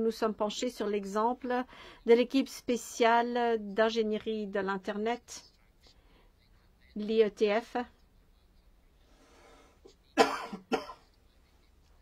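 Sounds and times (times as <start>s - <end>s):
soft breath: 1.6s - 2.1s, 5.7s - 6.7s, 8.9s - 10.0s
person coughing: 10.1s - 11.1s.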